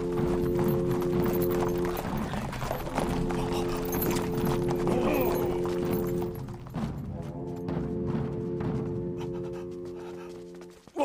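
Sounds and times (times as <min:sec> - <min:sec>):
background music: 0:00.0 - 0:11.0
horse hoofbeats: 0:00.0 - 0:11.0.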